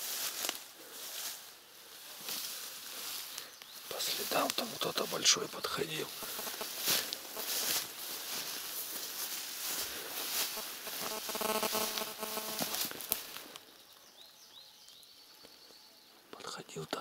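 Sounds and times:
tall grass rustling: 0:00.0 - 0:15.5
footsteps squelching on wet ground: 0:06.1 - 0:13.6.

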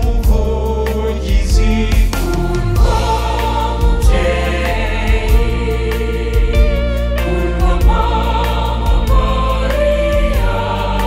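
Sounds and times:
bass line with steady beat: 0:00.0 - 0:11.0
mixed choir singing a hymn: 0:00.0 - 0:11.0
piano: 0:00.0 - 0:11.0.

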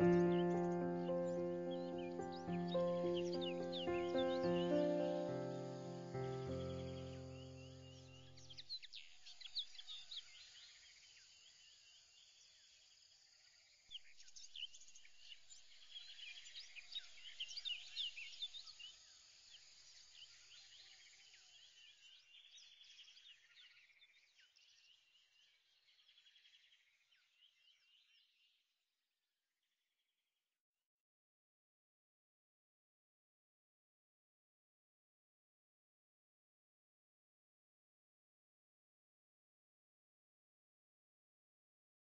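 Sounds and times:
background music: 0:00.0 - 0:08.2
birds chirping: 0:00.0 - 0:10.4.

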